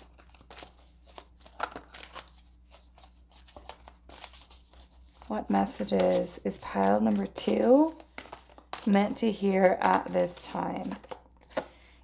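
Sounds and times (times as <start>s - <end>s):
cards rustling: 0.0s - 11.9s.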